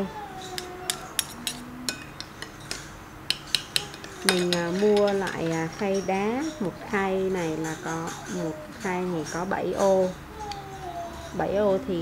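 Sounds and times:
metal spoons clinking on glass bowl: 0.4s - 10.2s.

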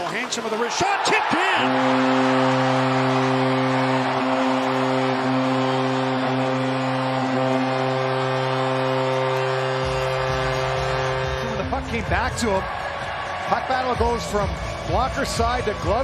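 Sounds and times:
crowd cheering: 0.0s - 16.0s
goal horn blowing: 1.0s - 16.0s.

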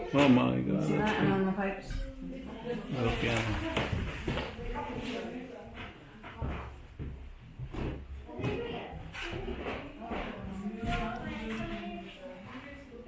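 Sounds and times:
people talking quietly: 0.0s - 13.0s.

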